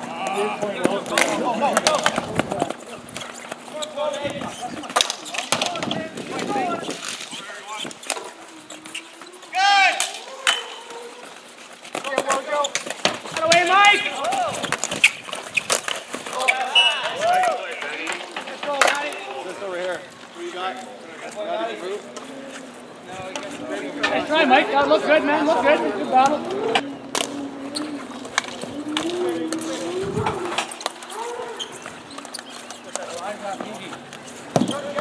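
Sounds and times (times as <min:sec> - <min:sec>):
hockey sticks clacking: 0:00.2 - 0:22.7, 0:26.1 - 0:35.0
players shouting: 0:05.4 - 0:11.5, 0:13.4 - 0:14.7, 0:16.3 - 0:19.7.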